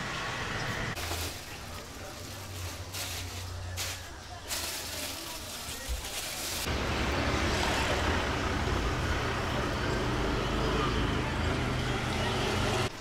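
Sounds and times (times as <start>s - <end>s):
low engine rumble: 0.0s - 13.0s
road traffic noise: 0.0s - 13.0s.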